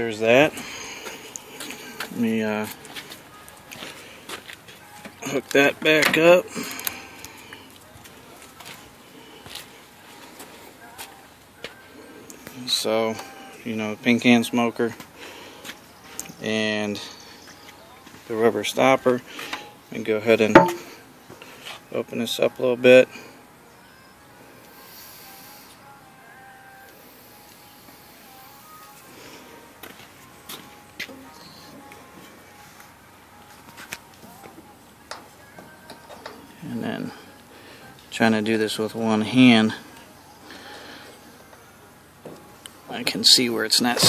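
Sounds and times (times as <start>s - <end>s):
faint background music: 0.0s - 44.0s
faint footsteps: 0.5s - 5.2s, 6.5s - 11.8s, 28.8s - 36.4s.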